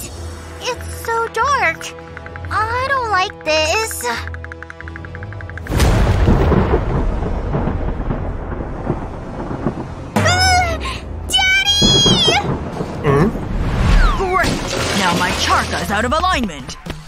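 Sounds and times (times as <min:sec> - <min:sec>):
thunder rumbling: 0:05.7 - 0:16.1.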